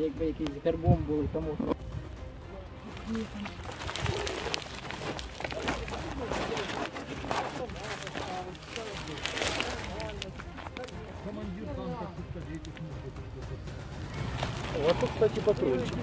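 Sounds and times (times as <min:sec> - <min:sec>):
men talking quietly: 0:00.0 - 0:16.0.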